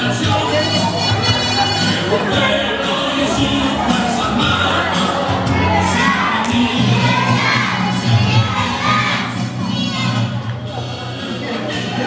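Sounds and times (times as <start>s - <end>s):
children shouting and cheering: 0.0s - 11.0s.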